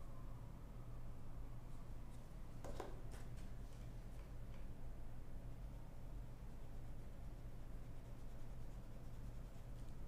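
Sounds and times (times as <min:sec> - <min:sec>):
low steady hum: 0:00.0 - 0:10.0
pen clicks and taps on desk: 0:02.6 - 0:03.0.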